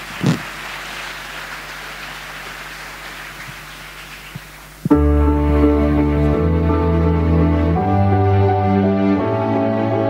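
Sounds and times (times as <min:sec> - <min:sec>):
audience applauding: 0:00.0 - 0:04.8.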